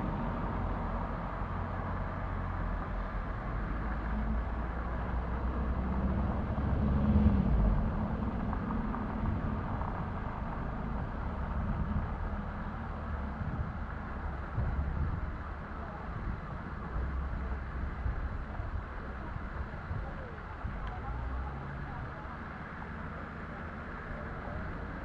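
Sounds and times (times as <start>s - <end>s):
car driving past: 0.0s - 13.2s
low rumble: 0.0s - 23.2s.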